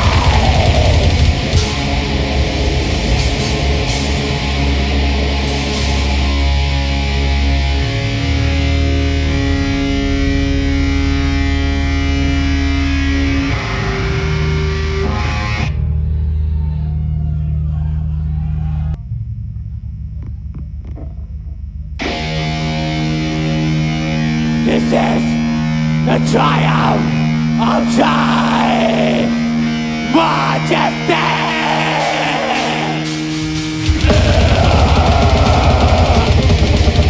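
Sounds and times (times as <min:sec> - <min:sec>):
metal band playing: 0:00.0 - 0:16.2, 0:22.0 - 0:37.0
rapid low pulses: 0:00.0 - 0:16.5, 0:32.2 - 0:37.0
distorted guitar chords: 0:00.0 - 0:16.6, 0:18.9 - 0:37.0
person shouting vocals: 0:24.6 - 0:29.5, 0:30.1 - 0:33.1, 0:34.0 - 0:36.8.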